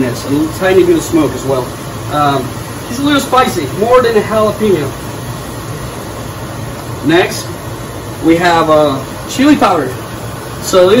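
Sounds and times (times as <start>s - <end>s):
kitchen hiss: 0.0s - 11.0s.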